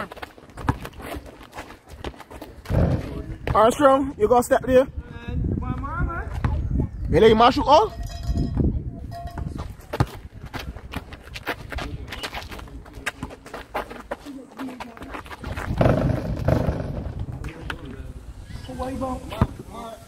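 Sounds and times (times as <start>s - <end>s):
basketball bouncing on concrete: 0.0s - 1.4s, 2.0s - 3.8s, 8.5s - 12.0s, 14.8s - 17.2s
players' footsteps: 0.0s - 3.8s, 9.4s - 17.9s.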